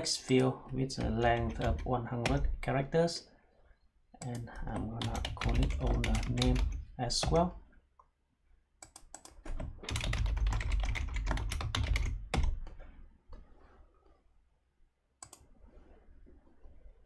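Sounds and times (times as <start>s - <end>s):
typing on computer keyboard: 1.0s - 2.4s, 4.2s - 7.4s, 8.8s - 12.7s.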